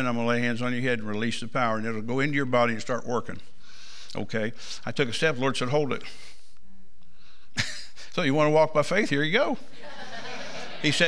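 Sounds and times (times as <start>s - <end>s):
person speaking: 7.9s - 11.0s.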